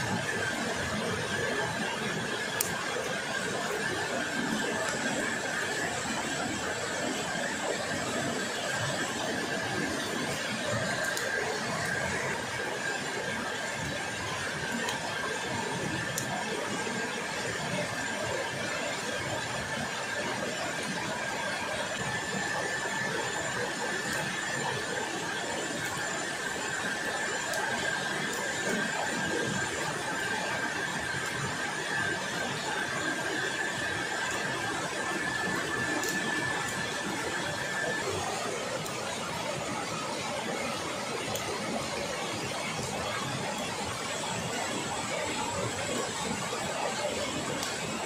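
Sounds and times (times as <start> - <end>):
high-pitched whine: 0.0 - 48.0.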